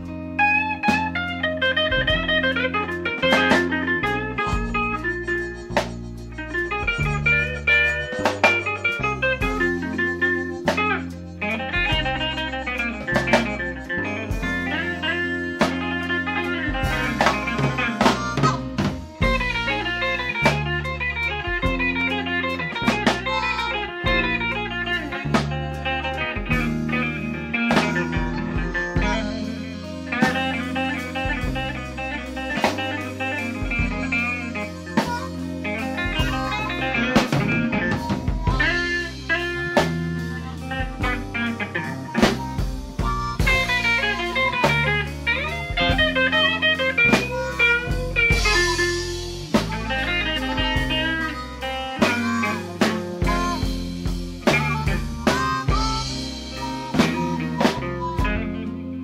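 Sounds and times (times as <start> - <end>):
bass guitar: 0.0 - 59.0
drum kit: 0.0 - 59.0
electric guitar lead: 0.0 - 59.0.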